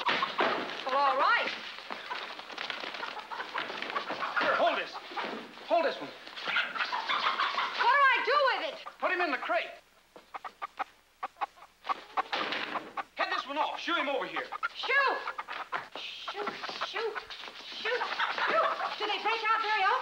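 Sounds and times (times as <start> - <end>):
chickens squawking and clucking: 0.0 - 20.0.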